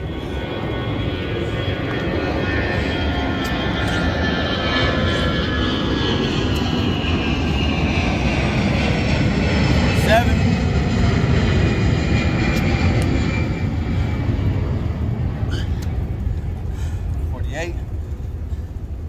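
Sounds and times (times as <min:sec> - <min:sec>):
aircraft passing overhead: 0:00.0 - 0:19.0.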